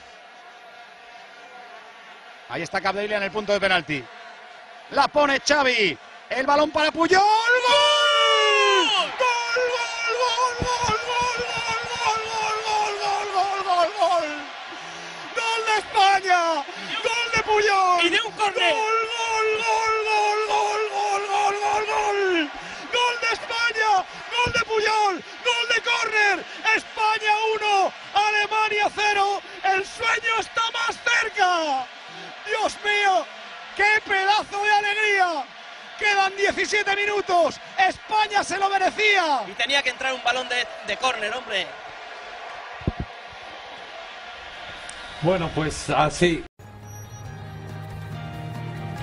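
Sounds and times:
stadium crowd noise: 0.0s - 49.0s
man shouting in celebration: 4.9s - 41.8s.

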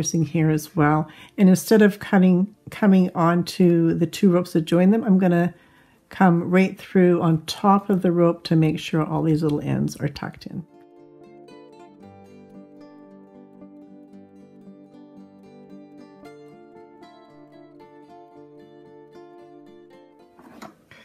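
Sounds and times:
plucked string instrument music: 10.4s - 20.9s.

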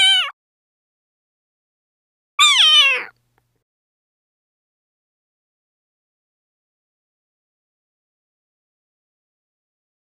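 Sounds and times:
cat meowing: 0.0s - 0.3s, 2.4s - 3.2s.

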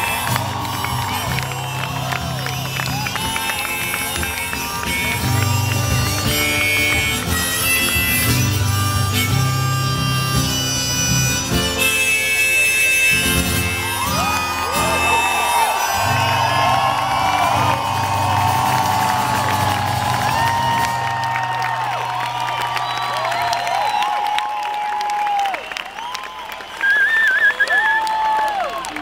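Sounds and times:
crowd cheering and whooping: 0.0s - 6.4s, 12.6s - 29.0s
loud wavering whistle: 11.7s - 28.0s.

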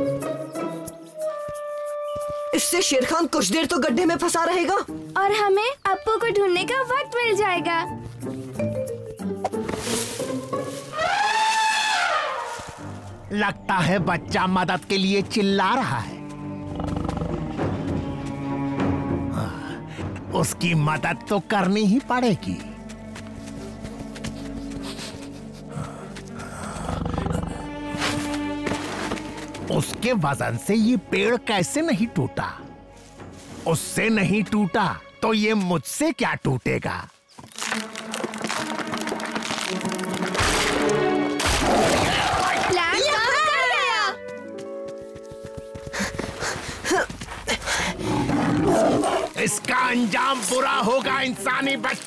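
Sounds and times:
background music: 0.0s - 52.0s
cartoon tiger growling: 26.6s - 27.7s, 48.0s - 49.4s.

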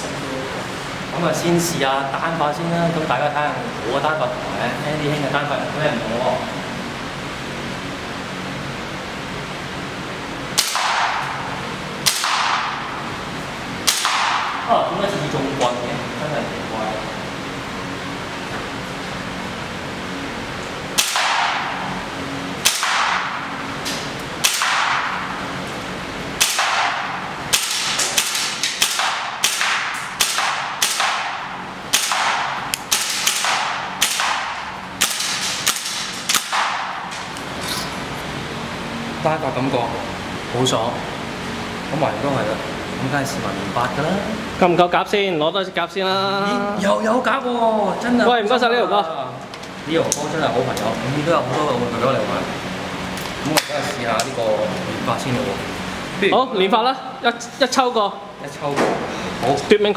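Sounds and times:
airsoft rifle shots echoing: 10.5s - 13.0s, 13.8s - 14.7s, 20.9s - 21.9s, 22.6s - 23.5s, 24.4s - 25.4s, 26.4s - 37.1s.

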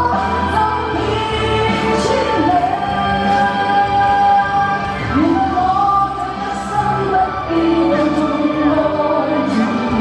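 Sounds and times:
woman singing into a microphone: 0.0s - 10.0s.

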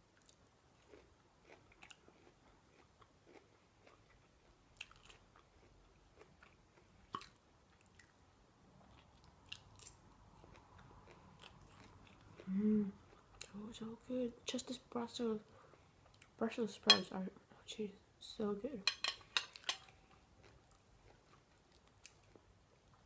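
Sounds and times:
chewing with wet mouth clicks: 0.1s - 8.2s, 19.5s - 23.0s.

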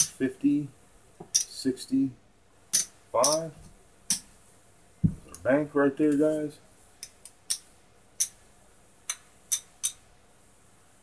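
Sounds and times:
casino chips clicking: 1.2s - 1.7s.

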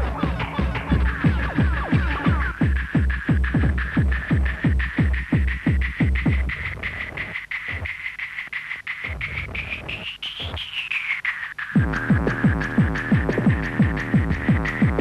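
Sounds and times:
pounding kick drum: 0.0s - 6.9s, 11.8s - 15.0s.

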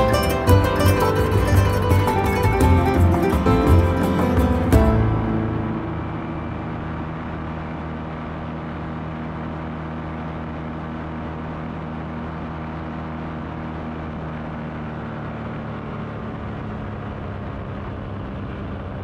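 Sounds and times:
light aircraft engine droning: 0.0s - 19.0s.

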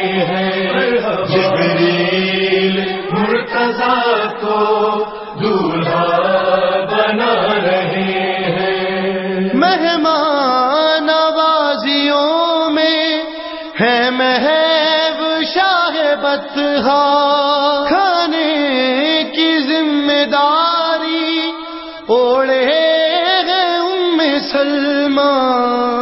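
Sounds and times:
chorus chanting a droning refrain: 0.0s - 26.0s
solo voice singing: 0.0s - 26.0s.

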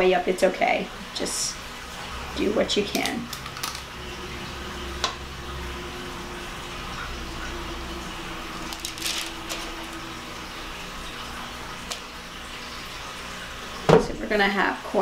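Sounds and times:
low room hum: 0.0s - 15.0s.

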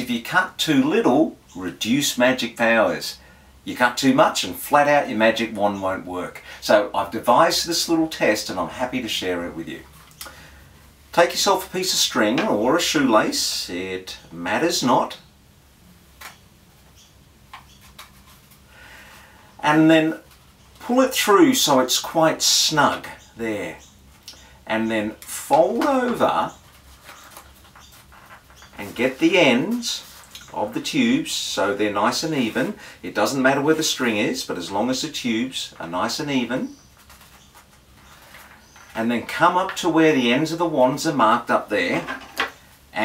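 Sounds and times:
soft rustling: 16.2s - 19.3s, 24.0s - 30.9s, 35.7s - 40.0s.

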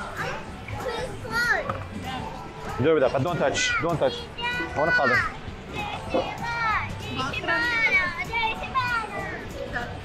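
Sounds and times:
background music: 0.0s - 10.0s
young children chattering: 0.0s - 10.0s.

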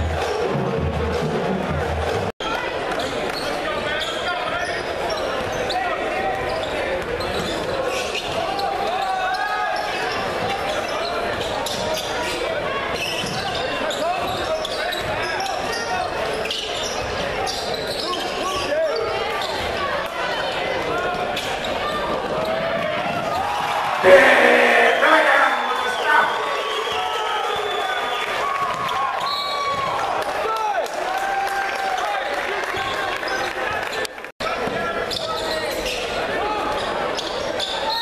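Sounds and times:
crowd talking and calling out: 0.0s - 27.1s.

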